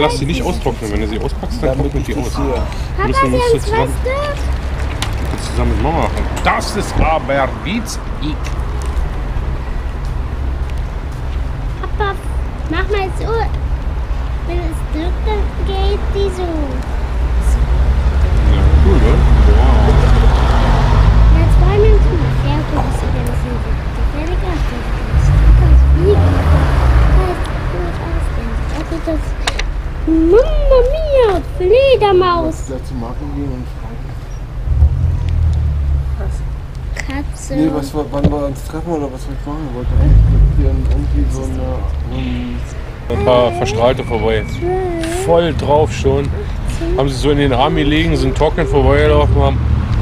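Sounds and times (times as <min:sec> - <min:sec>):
city street rumble: 0:00.0 - 0:50.0
motor vehicle passing: 0:00.0 - 0:50.0.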